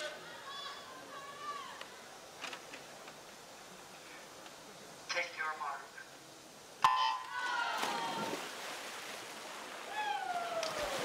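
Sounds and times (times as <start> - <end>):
crowd noise: 0.0 - 5.1
swimmers splashing: 6.8 - 11.0.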